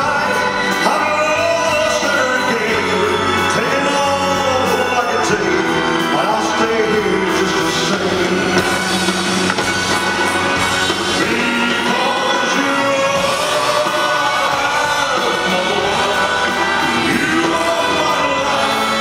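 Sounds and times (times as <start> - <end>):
man singing into microphone: 0.0 - 9.1, 10.9 - 19.0
live band playing: 0.0 - 19.0
electric bass: 1.6 - 19.0.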